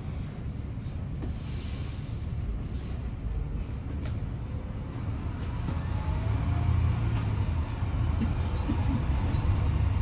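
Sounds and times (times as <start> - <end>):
bus cabin rumble: 0.0 - 10.0.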